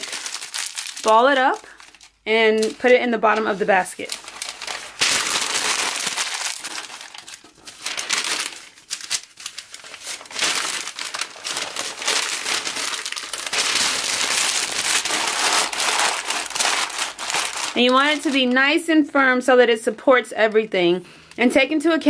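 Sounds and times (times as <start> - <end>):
paper crumpling and crackling: 0.0 - 18.8.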